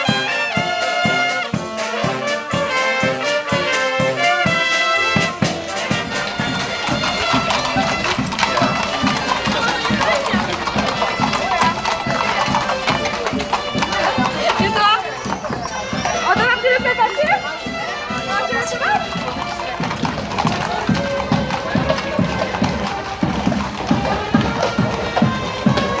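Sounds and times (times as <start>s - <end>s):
brass band music: 0.0s - 26.0s
crowd chatter: 0.0s - 26.0s
horseshoes clopping on pavement: 0.0s - 26.0s.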